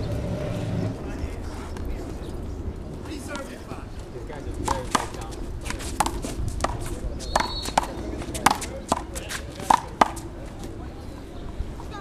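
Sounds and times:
rubber ball smacking: 6.0 - 6.8.

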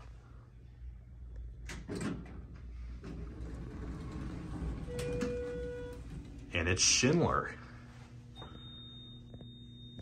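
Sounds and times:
elevator doors rumbling open: 1.6 - 6.7.

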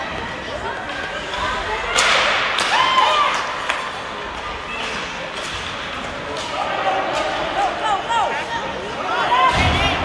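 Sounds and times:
spectators' raised voices: 0.0 - 10.0.

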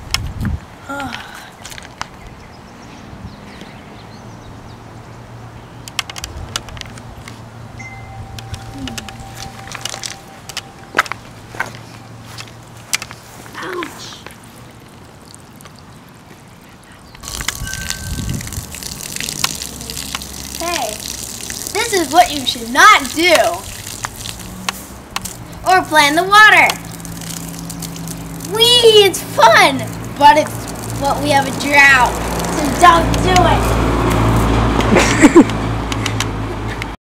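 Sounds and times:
low hum: 7.7 - 13.2
footsteps on grass: 8.5 - 14.6
boy speaking: 8.7 - 9.1, 13.5 - 14.3, 19.6 - 23.7, 25.6 - 26.9, 28.4 - 33.8
hose water spraying on lawn: 17.2 - 35.4.

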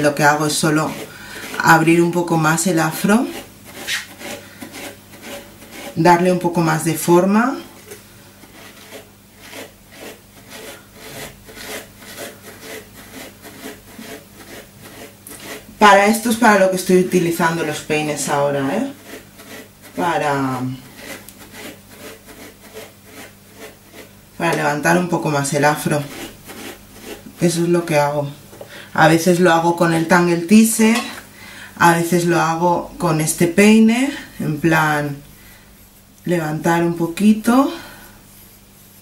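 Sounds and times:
brush scratching through hair: 0.0 - 28.2, 36.7 - 39.0.

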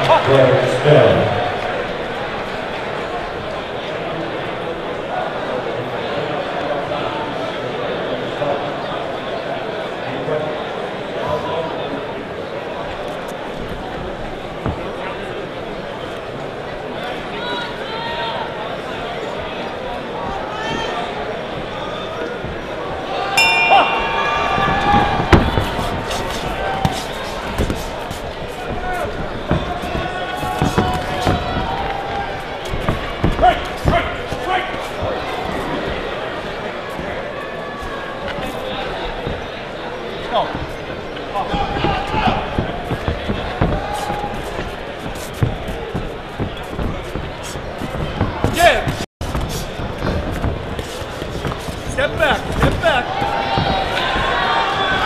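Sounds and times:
spectators talking and calling out: 0.0 - 55.0
punches thudding: 23.7 - 36.1, 40.4 - 55.0.

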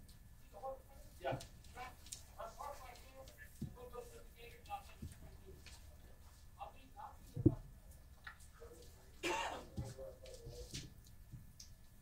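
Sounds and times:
person coughing: 9.2 - 9.8.

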